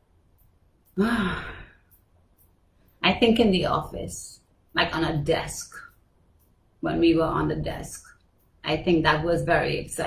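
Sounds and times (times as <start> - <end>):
woman sighing: 1.0 - 1.8.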